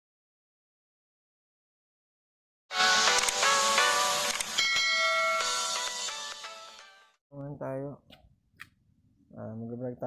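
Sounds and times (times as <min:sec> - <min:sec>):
bright bell chime: 0:04.6 - 0:06.1.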